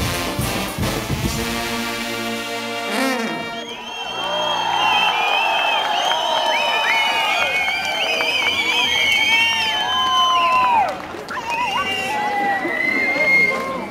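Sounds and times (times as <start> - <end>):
band music: 0.0 - 4.8
crowd cheering and whooping: 3.6 - 13.9.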